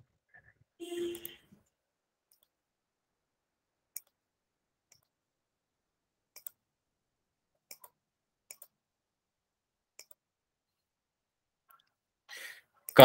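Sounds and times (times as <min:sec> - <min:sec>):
faint computer mouse clicks: 0:03.9 - 0:04.2, 0:06.3 - 0:06.6, 0:07.7 - 0:08.7, 0:10.0 - 0:10.2.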